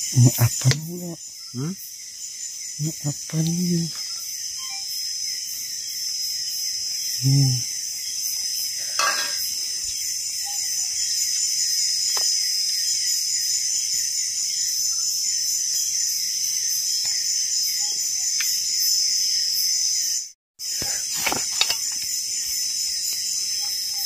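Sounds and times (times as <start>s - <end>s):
insects chorus: 0.0s - 24.0s.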